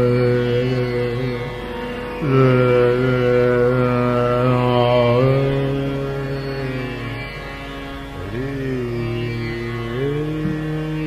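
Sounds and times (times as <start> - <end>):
man singing long held notes: 0.0 - 11.0
tanpura drone: 0.0 - 11.0.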